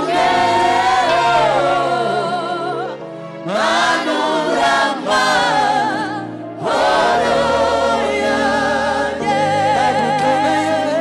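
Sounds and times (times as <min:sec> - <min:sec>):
group singing gospel: 0:00.0 - 0:11.0.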